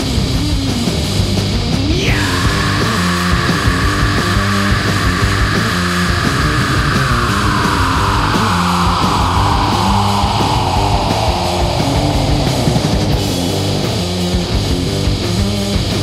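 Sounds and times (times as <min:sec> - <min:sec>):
bass and drum groove: 0:00.0 - 0:16.0
long held high note sliding down: 0:02.2 - 0:13.9.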